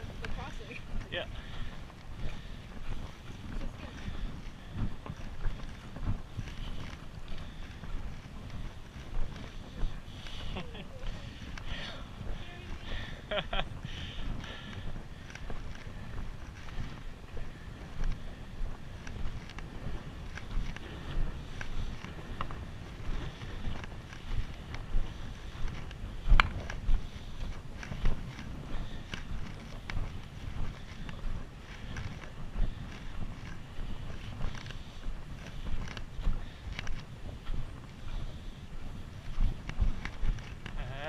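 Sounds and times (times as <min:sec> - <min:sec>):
footsteps crunching on gravel: 0:00.0 - 0:41.0
wind rumble: 0:00.0 - 0:41.0
camera handling noise: 0:19.0 - 0:34.8.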